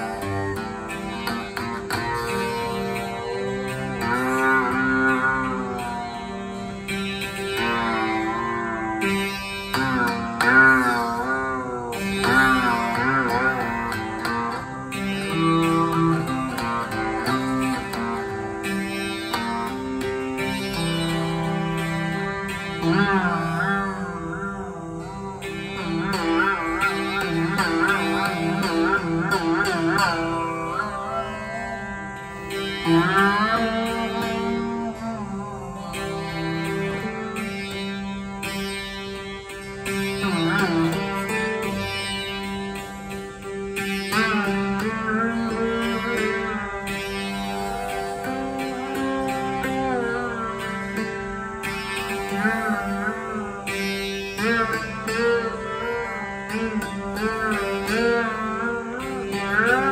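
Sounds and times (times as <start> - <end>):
plucked veena with pitch slides: 0.0 - 59.9
tanpura drone: 0.0 - 59.9.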